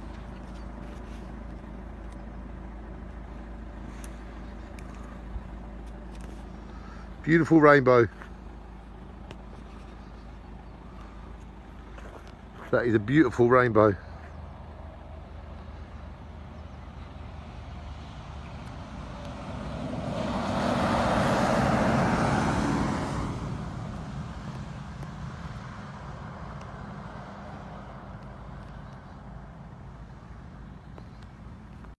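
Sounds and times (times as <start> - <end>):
car engine idling hum: 0.0 - 31.9
passing road vehicle: 0.0 - 31.9.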